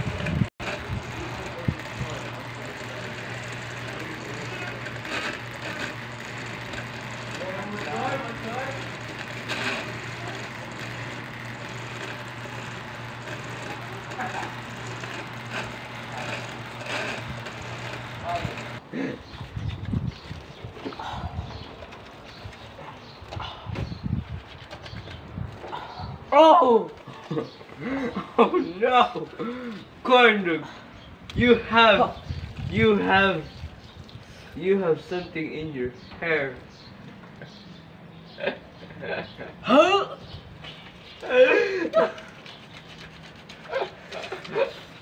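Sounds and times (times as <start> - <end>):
hands scrubbing wet garment: 41.9 - 45.0.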